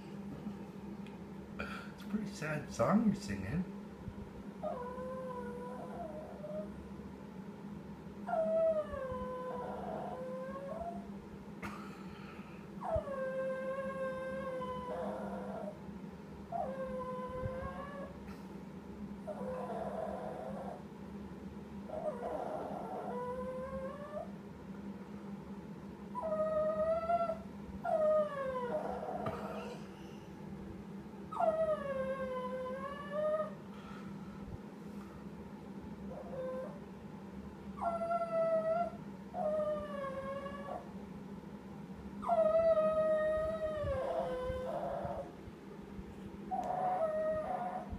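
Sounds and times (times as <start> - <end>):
small dog whining and howling: 4.6 - 6.8, 8.2 - 11.1, 12.8 - 15.8, 16.5 - 18.2, 19.2 - 20.9, 21.9 - 24.4, 26.1 - 29.8, 31.3 - 33.6, 36.0 - 36.9, 37.7 - 40.9, 42.2 - 45.4, 46.5 - 47.9.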